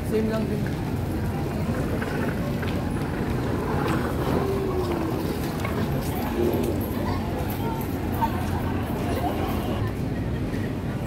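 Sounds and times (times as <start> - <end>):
busy pedestrian street ambience: 0.0 - 11.0
wind rumbling on microphone: 0.0 - 11.0.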